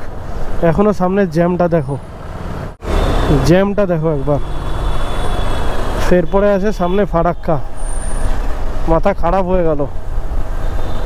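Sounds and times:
man speaking: 0.6s - 2.0s, 3.3s - 4.4s, 6.0s - 7.6s, 8.9s - 10.0s.

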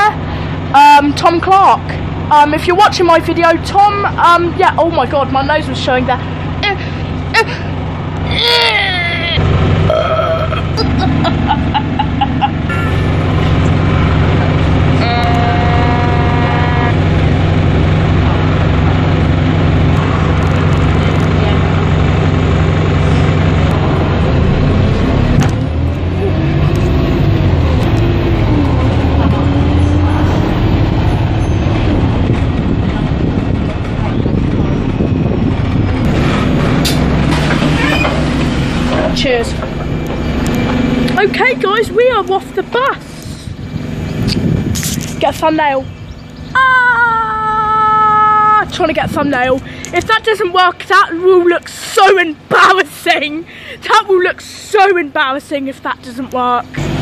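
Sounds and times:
bus engine drone: 0.0s - 57.0s
person laughing: 6.7s - 7.7s, 8.3s - 13.3s, 46.6s - 48.6s.

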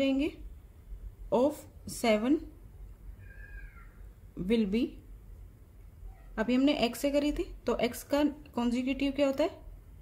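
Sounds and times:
faint high-pitched cry: 3.1s - 4.1s, 6.0s - 6.4s.

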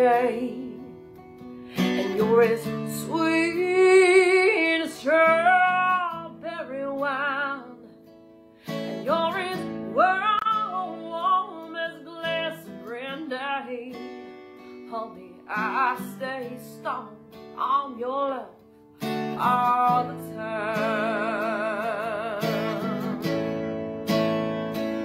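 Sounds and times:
woman singing: 0.0s - 23.3s
strummed acoustic guitar: 0.0s - 25.0s.

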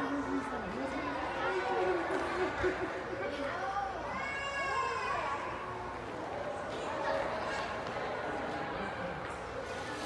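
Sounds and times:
children's voices: 0.0s - 9.2s.

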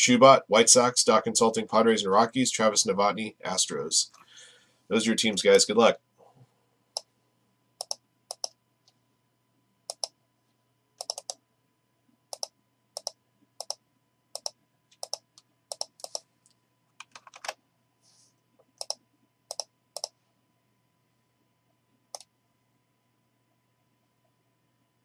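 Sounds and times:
mouse and keyboard clicks: 7.8s - 8.6s, 9.9s - 10.2s, 11.0s - 11.4s, 12.4s - 13.8s, 14.4s - 16.2s, 18.7s - 20.1s.

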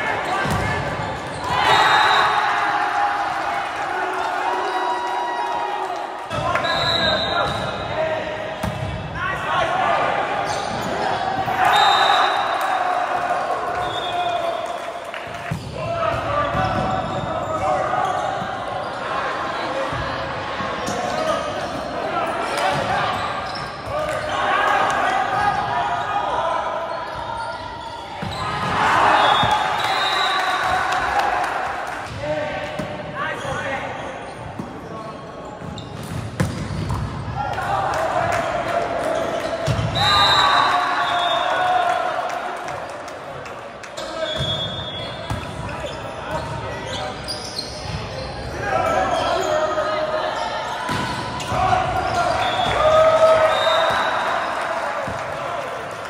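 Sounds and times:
players shouting: 0.0s - 34.1s, 37.4s - 43.0s, 48.1s - 55.8s
sneaker squeaks: 6.3s - 7.8s, 10.4s - 12.6s, 15.4s - 19.1s, 20.8s - 22.0s, 22.6s - 24.4s, 26.8s - 30.5s, 33.3s - 37.3s, 44.0s - 54.3s.

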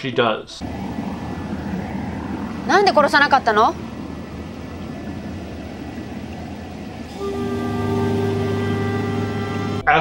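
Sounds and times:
steady machine drone: 0.6s - 9.9s.

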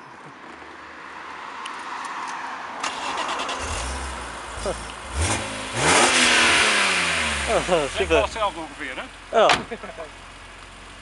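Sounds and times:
car engine running and revving: 3.6s - 11.0s.

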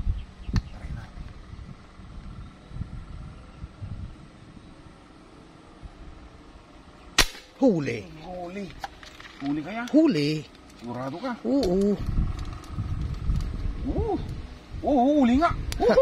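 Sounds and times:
air rifle shot: 7.2s - 7.6s
person exclaiming: 13.8s - 16.0s.

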